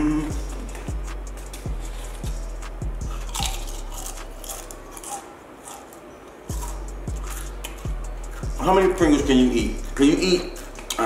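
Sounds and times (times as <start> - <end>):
background music with thumping beat: 0.0 - 4.9, 6.5 - 11.0
person chewing crisp potato chip: 3.0 - 8.0.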